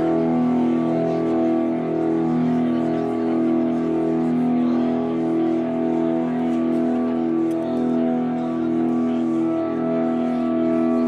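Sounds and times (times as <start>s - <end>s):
ambient drone music: 0.0s - 11.0s.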